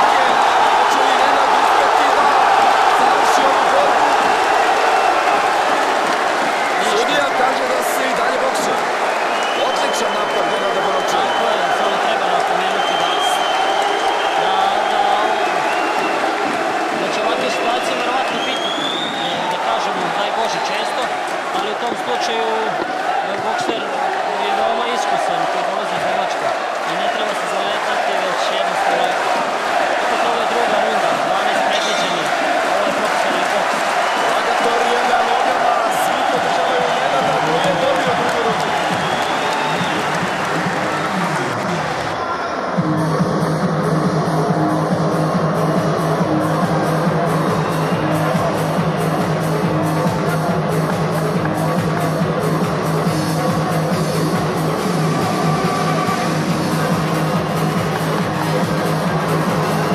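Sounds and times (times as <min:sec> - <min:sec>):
arena crowd noise: 0:00.0 - 0:59.9
electronic dance music: 0:00.0 - 0:59.9.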